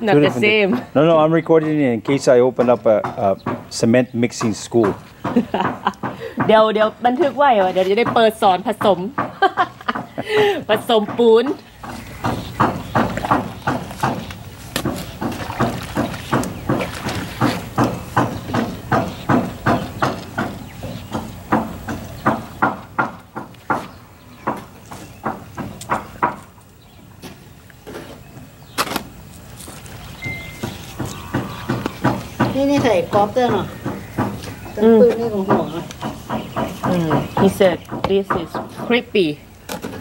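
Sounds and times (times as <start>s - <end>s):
hoe chopping wet mortar: 2.1s - 26.5s, 30.4s - 39.0s.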